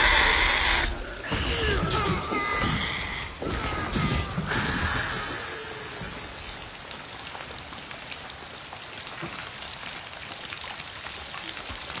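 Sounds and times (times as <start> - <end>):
heavy rain on foliage: 0.0 - 12.0
raindrops striking close by: 0.0 - 12.0.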